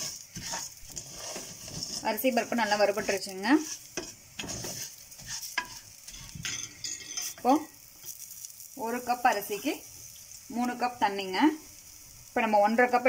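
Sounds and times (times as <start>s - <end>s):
wooden spoon scraping a pot: 0.0s - 8.2s.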